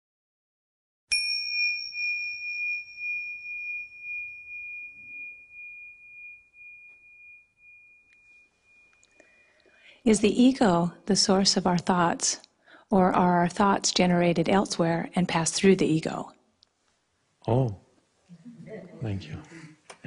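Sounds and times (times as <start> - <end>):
small bell chime: 1.1 - 9.6.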